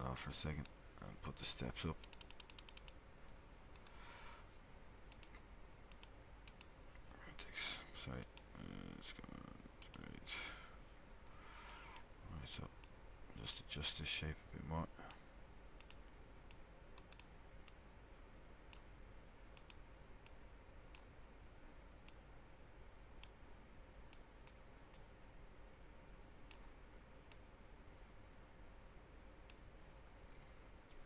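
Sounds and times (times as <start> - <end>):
faint low hum: 0.0 - 31.0.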